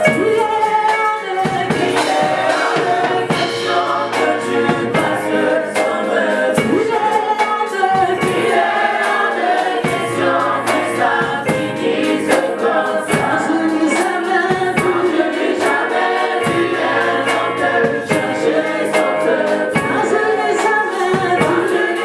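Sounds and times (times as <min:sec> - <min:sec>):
choir singing in chorus: 0:00.0 - 0:22.0
drum kit beat: 0:00.0 - 0:22.0
keyboard: 0:00.0 - 0:22.0.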